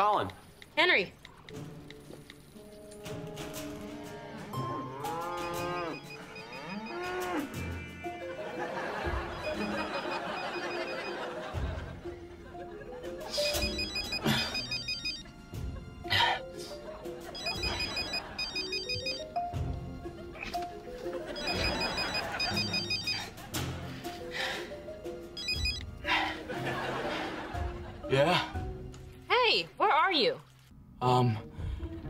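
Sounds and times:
background music: 0.0 - 32.0
mobile phone ringing: 5.1 - 7.3, 8.8 - 11.6, 13.3 - 15.3, 17.3 - 19.7, 21.3 - 23.4, 25.4 - 26.0.

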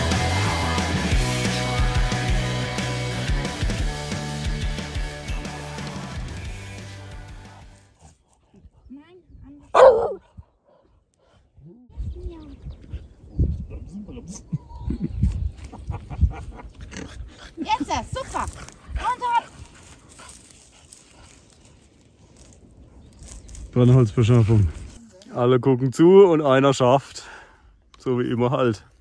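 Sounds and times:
rock background music: 0.0 - 7.9
dog barking: 9.7 - 10.8
short dog noises: 9.7 - 11.4.

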